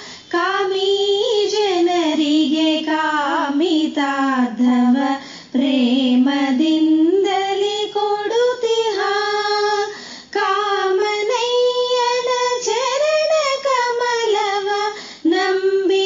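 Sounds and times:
woman singing devotional song: 0.0s - 16.0s.

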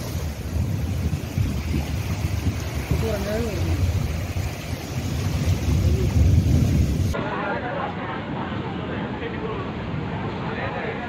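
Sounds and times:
wind buffeting microphone: 0.0s - 7.2s
surf and water washing: 0.0s - 11.0s.

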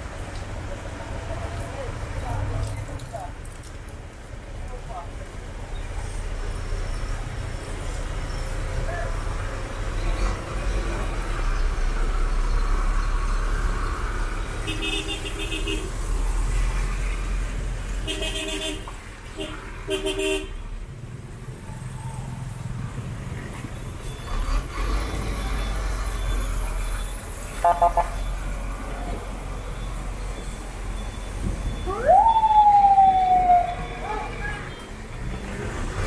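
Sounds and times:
street traffic engines: 0.0s - 36.0s
vehicle horns honking: 14.6s - 15.9s, 18.0s - 20.6s, 27.6s - 28.2s.

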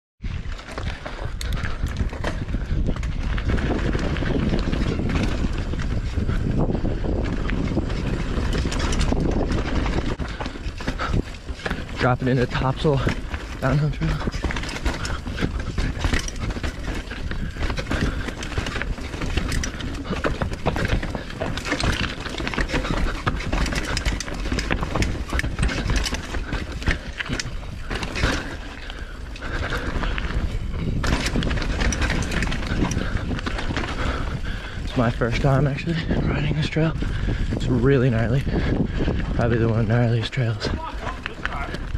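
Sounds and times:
bike clattering over ground: 0.4s - 35.9s.

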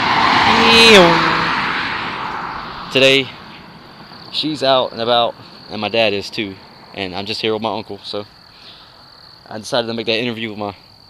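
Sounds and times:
car passing by: 0.0s - 5.8s.

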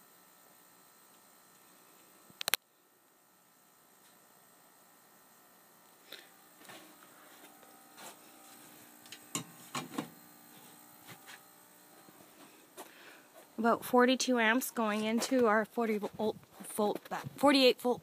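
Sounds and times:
faint hum and hiss: 0.0s - 18.0s.

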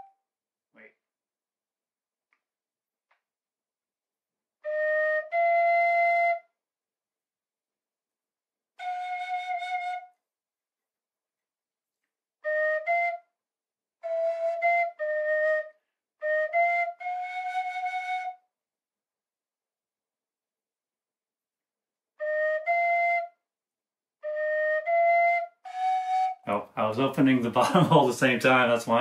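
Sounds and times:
tin whistle notes: 4.7s - 6.5s, 14.0s - 18.4s, 24.3s - 26.5s.

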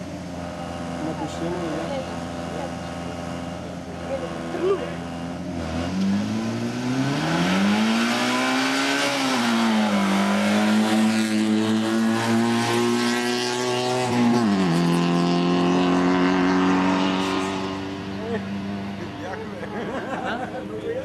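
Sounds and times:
rally car engine accelerating: 0.0s - 20.4s.

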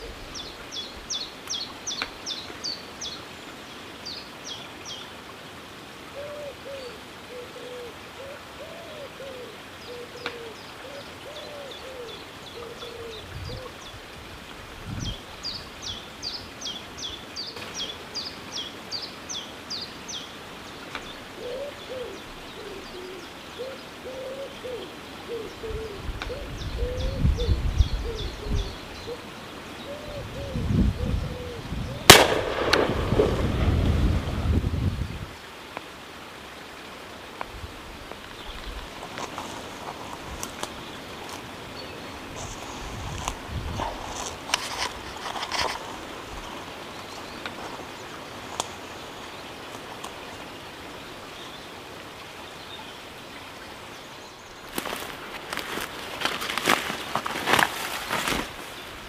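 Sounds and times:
songbird singing: 0.0s - 5.2s, 6.1s - 14.2s, 14.9s - 35.5s, 37.4s - 51.8s, 52.4s - 57.7s
pigeons cooing: 6.2s - 13.8s, 21.3s - 32.2s.

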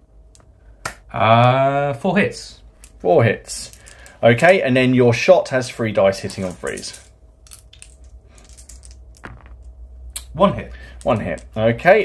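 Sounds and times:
dice clicking: 6.2s - 9.7s, 10.9s - 11.6s.

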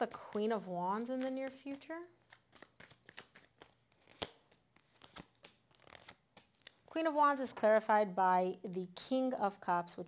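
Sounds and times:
cards being shuffled and dealt: 0.2s - 7.7s.

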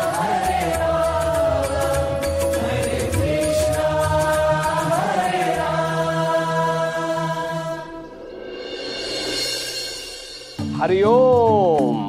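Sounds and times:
chant-like melody: 0.0s - 8.3s.

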